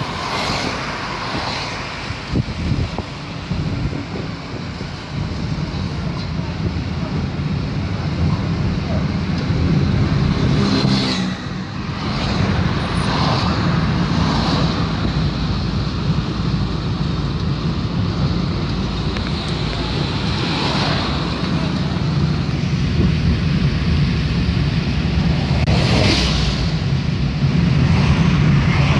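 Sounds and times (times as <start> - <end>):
car road and engine rumble: 0.0 - 28.9
vehicles passing: 0.0 - 28.9.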